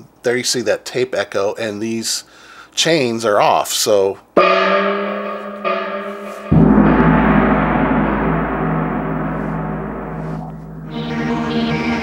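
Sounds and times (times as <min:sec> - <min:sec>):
synth gong strike and ring: 0:04.4 - 0:12.0
rhythmic electronic synth pattern: 0:10.5 - 0:11.9.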